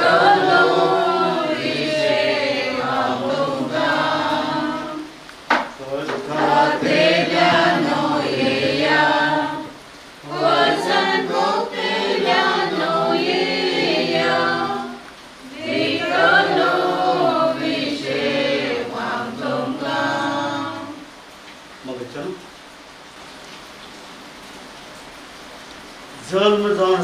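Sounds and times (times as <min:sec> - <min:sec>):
group singing a hymn unaccompanied: 0:00.0 - 0:21.2.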